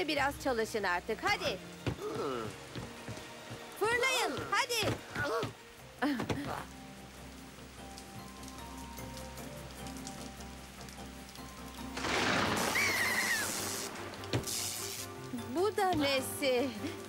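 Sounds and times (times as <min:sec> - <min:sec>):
rain sound effect: 0:00.0 - 0:17.0
cartoon background music: 0:11.9 - 0:17.0
rush of storm noise: 0:12.0 - 0:14.2
wavering high cry: 0:12.7 - 0:13.6.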